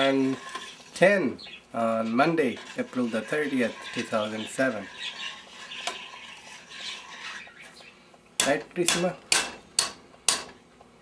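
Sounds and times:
spoon scraping a saucepan: 0.0s - 1.0s, 1.9s - 7.8s.

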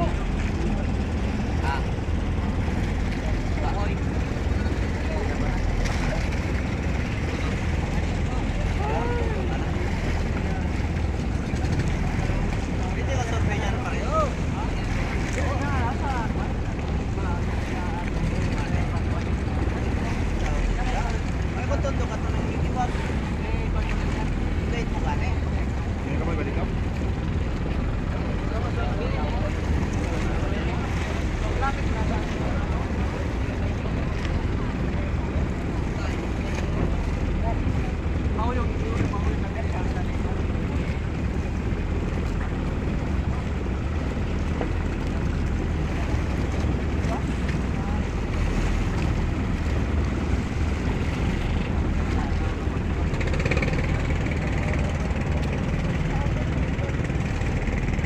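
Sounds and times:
boat engine rumble: 0.0s - 58.0s
distant voices: 0.0s - 58.0s.

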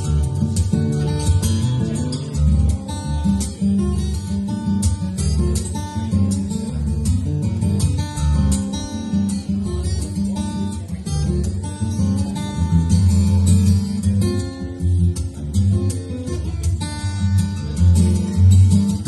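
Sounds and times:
acoustic guitar fingerstyle: 0.0s - 19.0s.

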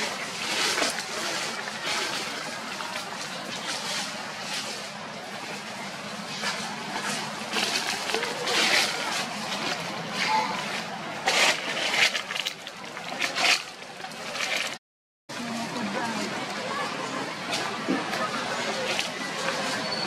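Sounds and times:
dry leaves rustling and crackling: 0.0s - 14.8s
outdoor background: 0.0s - 20.0s.

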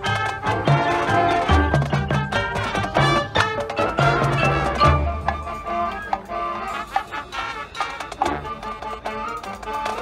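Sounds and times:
marching band playing: 0.0s - 10.0s.

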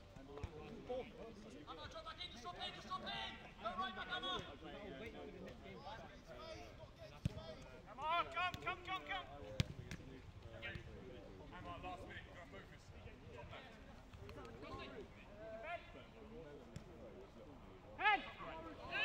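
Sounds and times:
players shouting: 18.0s - 19.0s.

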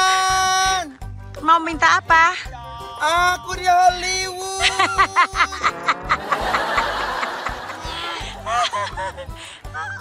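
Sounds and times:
background music with steady beat: 0.0s - 10.0s
person laughing: 4.6s - 10.0s.

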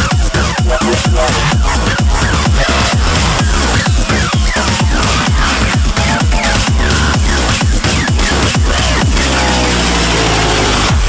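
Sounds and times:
kick drum: 0.0s - 10.0s
deep bass: 0.0s - 11.0s
electronic dance music: 0.0s - 11.0s.

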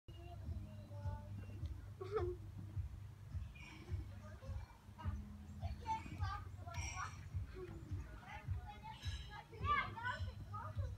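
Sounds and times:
low thumps: 0.4s - 10.9s.

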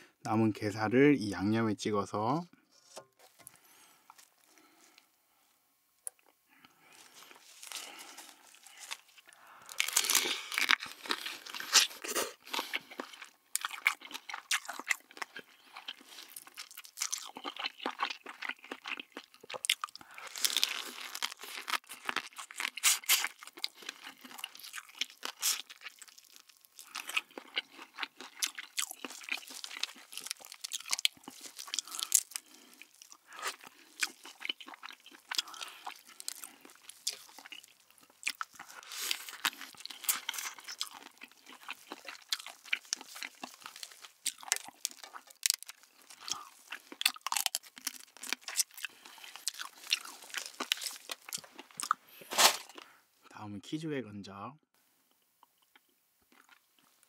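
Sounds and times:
crab shell crunching and chewing: 6.0s - 53.0s, 55.1s - 57.0s.

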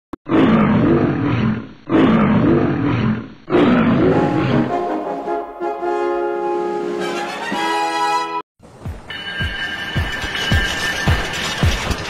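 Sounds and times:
lion roaring: 0.3s - 4.7s.

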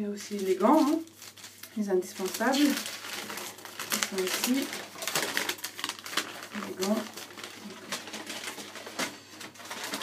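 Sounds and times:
packaging crinkling and rustling: 0.1s - 10.0s.

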